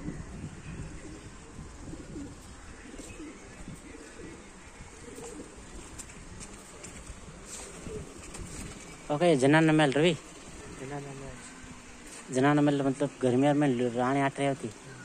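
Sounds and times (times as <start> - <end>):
outdoor background hiss: 0.0 - 15.0
pigeons cooing: 0.0 - 15.0.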